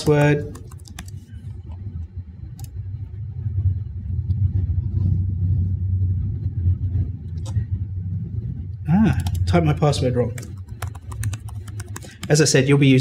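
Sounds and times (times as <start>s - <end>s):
low rumble: 1.1s - 13.0s.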